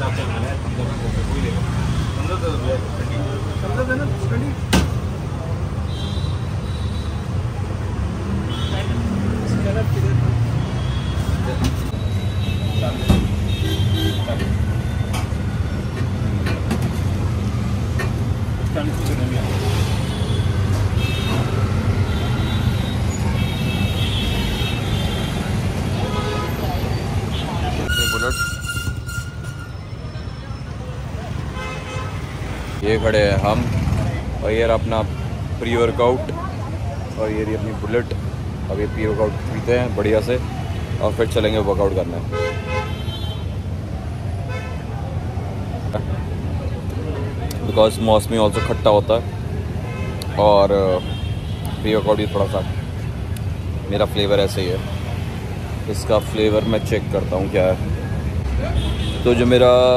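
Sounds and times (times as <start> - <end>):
traffic rumble: 0.0 - 59.9
car horns tooting: 20.0 - 30.3, 31.4 - 32.4, 42.3 - 43.6.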